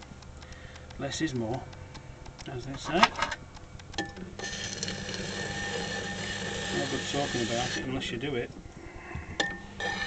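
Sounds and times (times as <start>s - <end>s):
potter's wheel motor humming: 4.0s - 8.5s, 9.4s - 10.0s.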